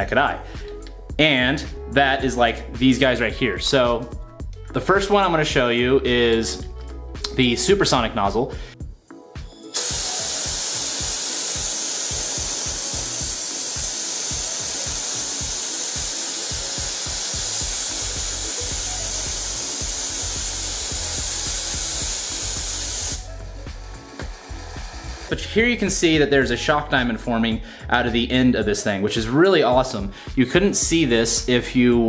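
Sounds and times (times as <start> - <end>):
compressed air blasting hiss: 8.7 - 25.5.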